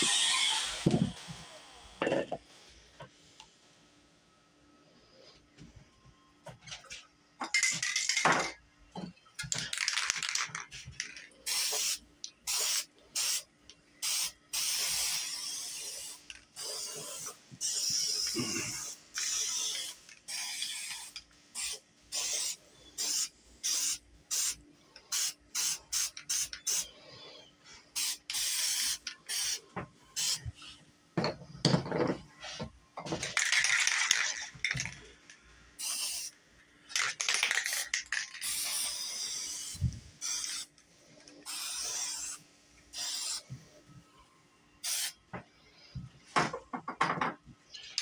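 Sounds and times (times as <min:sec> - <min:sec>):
spray paint can hissing: 0:11.4 - 0:13.4, 0:14.0 - 0:26.9, 0:28.0 - 0:29.6, 0:35.8 - 0:36.3, 0:36.9 - 0:40.7, 0:41.4 - 0:43.4, 0:44.8 - 0:45.2.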